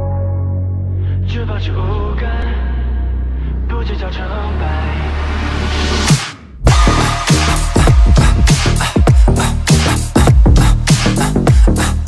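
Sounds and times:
deep synth bass drone: 0:00.0 - 0:12.0
man singing pop song: 0:01.2 - 0:02.9, 0:03.6 - 0:05.5.

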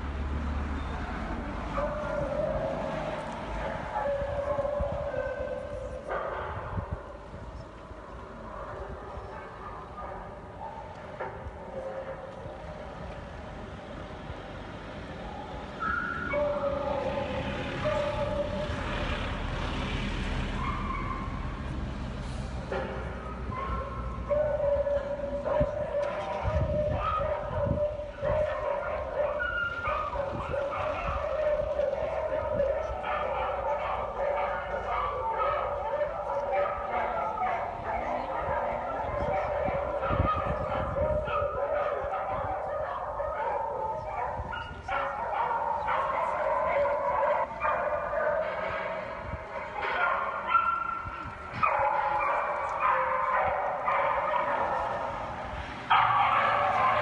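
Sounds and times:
low traffic rumble: 0:00.0 - 0:57.0
dogs howling and barking: 0:01.7 - 0:07.0, 0:15.1 - 0:19.3, 0:20.4 - 0:21.5, 0:22.7 - 0:57.0.

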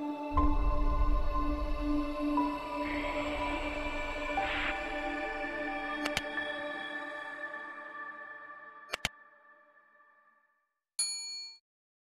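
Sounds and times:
outro music: 0:00.2 - 0:08.7
bright bell ding: 0:11.0 - 0:11.6.

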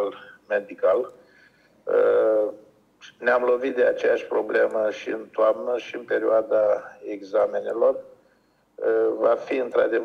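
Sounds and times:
man speaking: 0:00.0 - 0:01.2, 0:01.9 - 0:08.1, 0:08.8 - 0:10.0
man's drawn-out hesitation vowel: 0:01.9 - 0:02.6.

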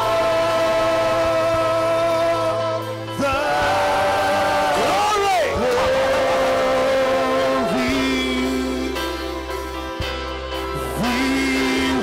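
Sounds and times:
singers holding long note: 0:00.0 - 0:10.0, 0:10.6 - 0:12.0.

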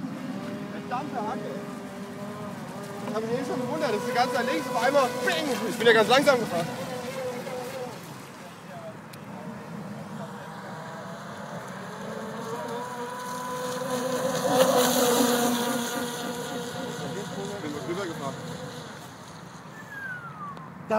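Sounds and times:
rc speedboat motor whine: 0:00.0 - 0:20.9.

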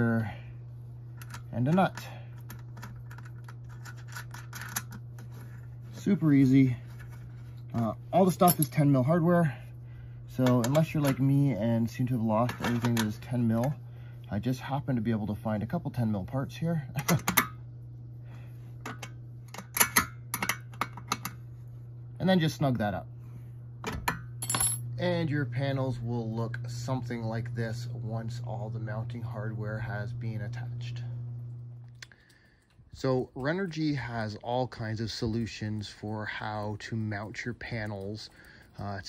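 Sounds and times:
steady low hum: 0:00.0 - 0:39.0
metallic clicks and scrapes: 0:01.2 - 0:05.8.

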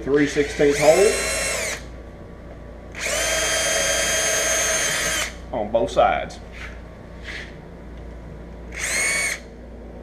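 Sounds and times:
cordless drill whining: 0:00.4 - 0:01.9, 0:02.9 - 0:05.4, 0:08.7 - 0:09.5.

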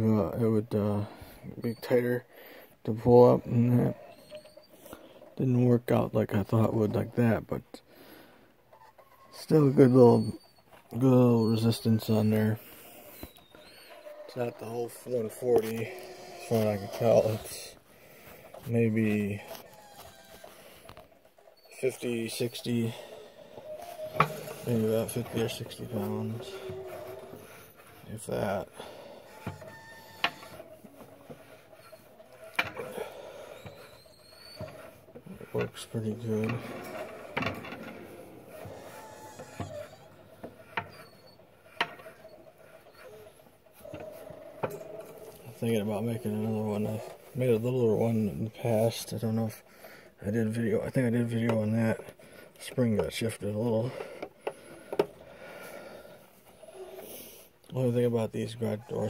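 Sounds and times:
faint squeaks: 0:00.0 - 0:59.0.

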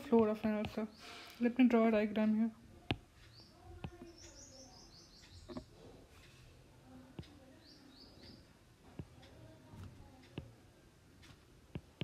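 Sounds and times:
faint bird chirping: 0:00.0 - 0:10.9.

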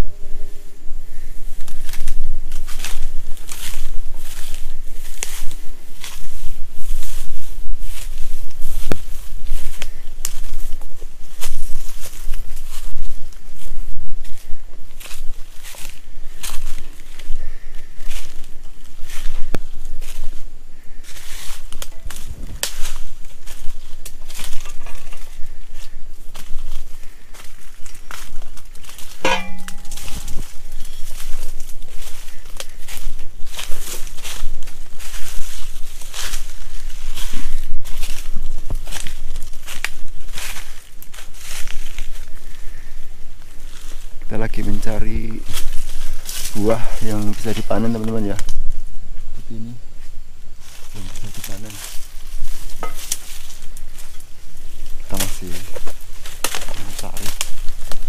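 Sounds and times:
footsteps crunching dry grass: 0:00.0 - 0:58.0
rustling vegetation: 0:00.0 - 0:58.0
sharp ringing click: 0:29.2 - 0:30.4.

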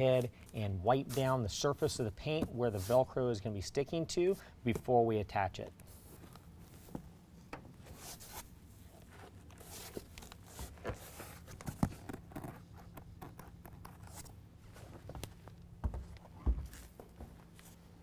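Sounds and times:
steady low hum: 0:00.0 - 0:18.0.

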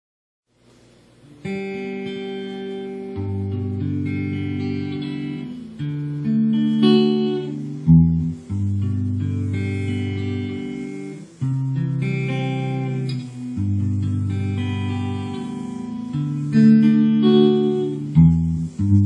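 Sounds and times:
electric guitar strummed: 0:01.2 - 0:19.0.

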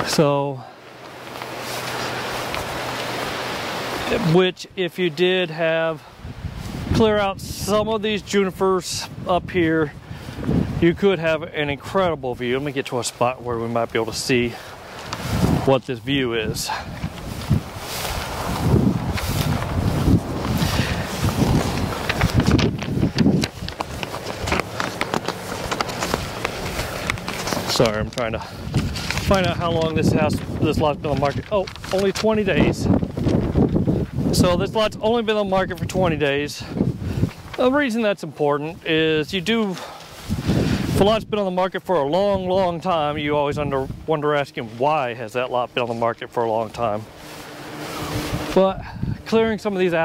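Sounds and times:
wind through dry grass: 0:00.0 - 0:50.0
footsteps: 0:01.0 - 0:04.2, 0:12.4 - 0:15.8, 0:16.4 - 0:34.6, 0:43.8 - 0:50.0.

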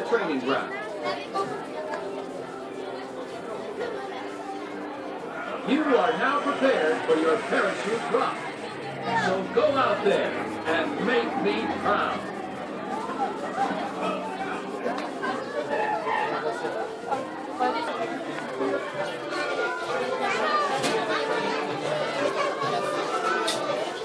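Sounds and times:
crowd chatter: 0:00.0 - 0:24.0.

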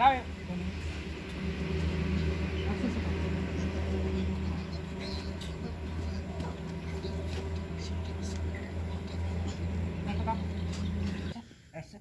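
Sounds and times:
steady low hum: 0:00.0 - 0:11.4.

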